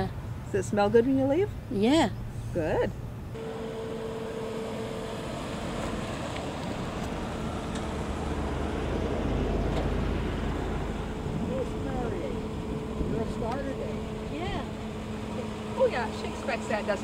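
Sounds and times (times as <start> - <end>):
vehicle engine and tyre rumble: 0.0 - 17.0.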